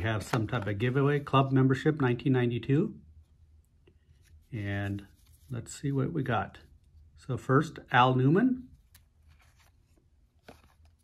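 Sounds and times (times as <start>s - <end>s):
cards rustling by hand: 3.9s - 7.0s, 8.7s - 11.0s.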